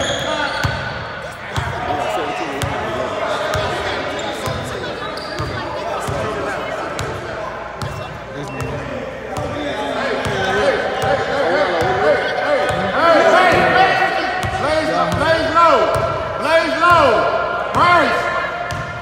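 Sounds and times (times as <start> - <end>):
echoing voices chatter: 0.0 - 19.0.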